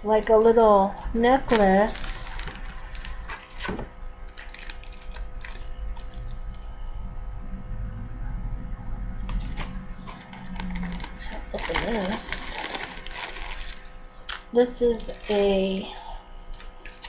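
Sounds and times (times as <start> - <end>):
steady low hum: 0.0 - 17.0
plastic bag crinkling: 1.5 - 6.8, 9.2 - 17.0.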